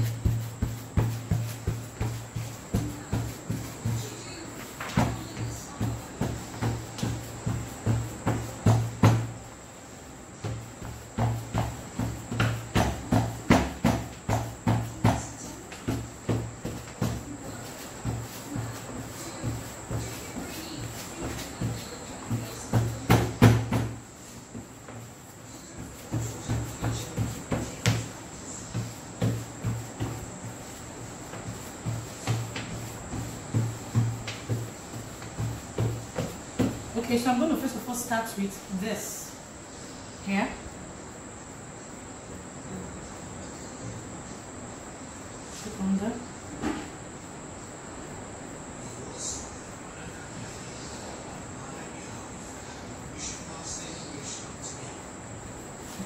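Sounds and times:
brush tapping on fondant: 0.0s - 9.4s, 10.4s - 37.7s.

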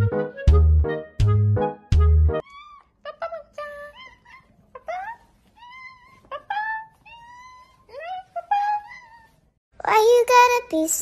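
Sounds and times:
cats meowing: 2.4s - 9.5s.

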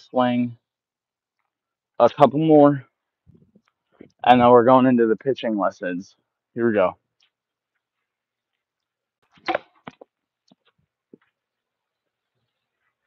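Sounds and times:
tee and ball clattering on pavement: 9.2s - 11.4s
bat cracking against batting tee: 9.3s - 10.1s.

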